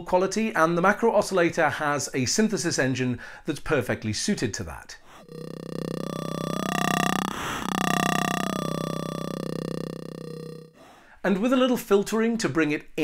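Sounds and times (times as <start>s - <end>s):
synthesizer low growl: 5.1s - 10.9s.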